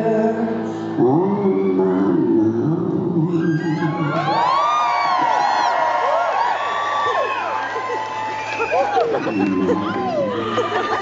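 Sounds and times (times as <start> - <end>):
audience cheering and whooping: 3.3 - 11.0.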